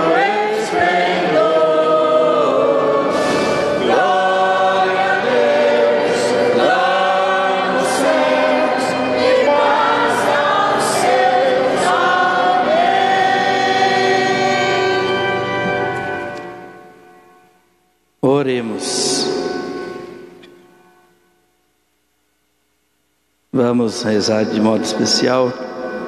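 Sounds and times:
church choir singing a hymn: 0:00.0 - 0:16.9.

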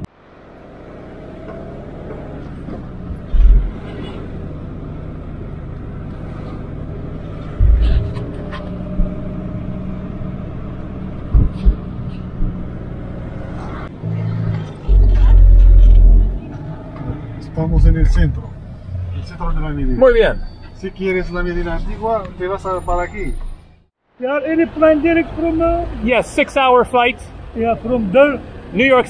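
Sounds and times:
car engine and road noise: 0:00.0 - 0:29.0
dull low thumps: 0:03.3 - 0:03.8, 0:07.5 - 0:09.6, 0:11.1 - 0:13.2, 0:14.8 - 0:18.5.

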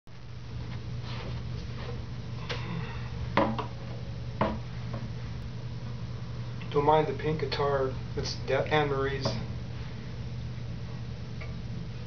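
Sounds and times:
steady low hum: 0:00.1 - 0:12.0
guitar and chair knocks: 0:03.4 - 0:03.7, 0:04.4 - 0:05.1.

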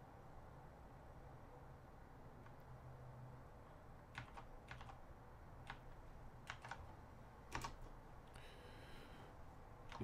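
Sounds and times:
keystrokes on computer keyboard: 0:04.1 - 0:06.9, 0:07.5 - 0:08.0.

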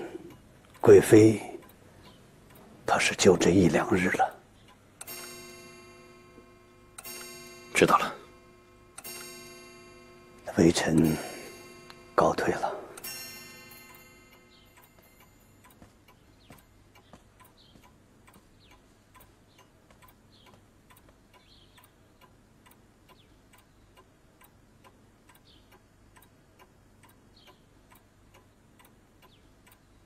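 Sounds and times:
clock ticking: 0:00.0 - 0:30.0.

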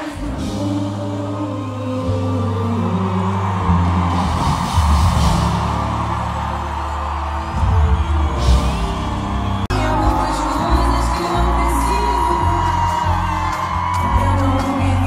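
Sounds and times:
person singing: 0:00.0 - 0:05.5, 0:09.7 - 0:15.0
live pop music over loudspeakers: 0:00.0 - 0:15.0.

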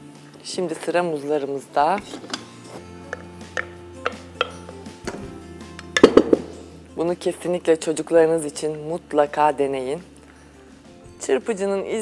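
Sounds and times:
soft background music: 0:00.0 - 0:12.0
kitchenware clinking against pot: 0:03.1 - 0:04.8.

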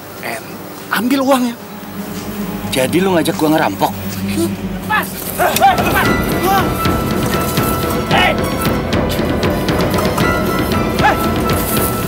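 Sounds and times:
noisy background: 0:00.0 - 0:12.0
men yelling: 0:02.5 - 0:08.6, 0:11.0 - 0:11.4.

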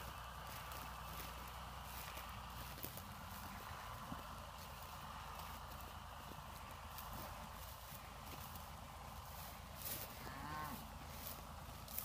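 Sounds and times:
footsteps in dry grass: 0:00.0 - 0:12.0
cow mooing: 0:10.1 - 0:10.9.

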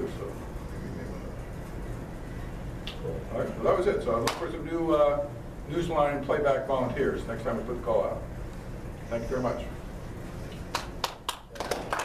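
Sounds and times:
people clapping: 0:10.7 - 0:12.0.

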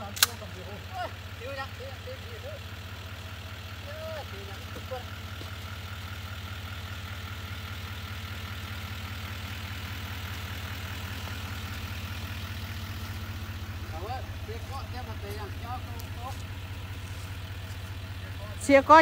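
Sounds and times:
pickup engine idling: 0:00.0 - 0:19.0.

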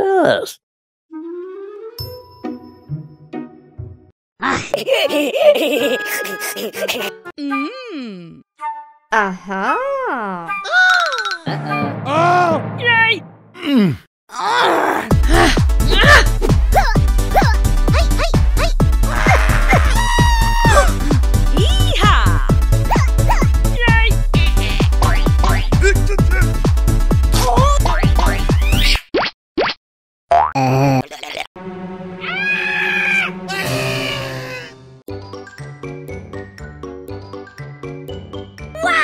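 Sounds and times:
groan-like voice: 0:13.6 - 0:16.3, 0:19.0 - 0:21.0, 0:21.6 - 0:22.6, 0:30.6 - 0:31.4, 0:33.5 - 0:34.8
music with heavy bass beat: 0:15.2 - 0:28.8.

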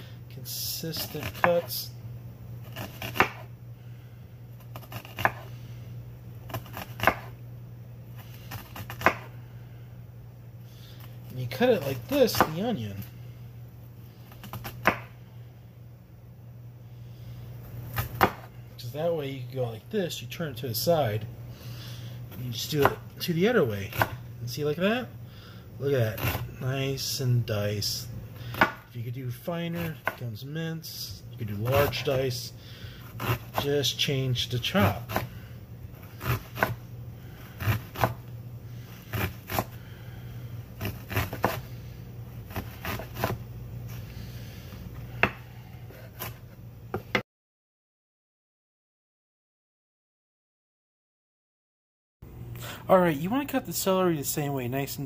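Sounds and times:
knife chopping onion on board: 0:01.0 - 0:01.7, 0:02.7 - 0:03.5, 0:04.7 - 0:05.4, 0:06.5 - 0:07.3, 0:08.5 - 0:09.4, 0:11.9 - 0:12.6, 0:14.4 - 0:15.2, 0:17.9 - 0:18.5, 0:22.8 - 0:23.0, 0:23.8 - 0:24.2, 0:28.5 - 0:28.9, 0:29.8 - 0:30.2, 0:33.0 - 0:33.7, 0:34.8 - 0:35.3, 0:36.0 - 0:36.8, 0:37.6 - 0:38.2, 0:39.1 - 0:39.8, 0:40.8 - 0:41.7, 0:42.5 - 0:43.4, 0:45.1 - 0:47.2.

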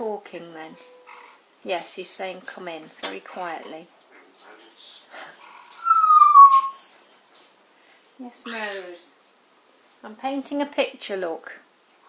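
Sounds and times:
parrot chatter: 0:04.6 - 0:06.8, 0:08.4 - 0:09.0
parrot whistled note: 0:05.8 - 0:06.8.

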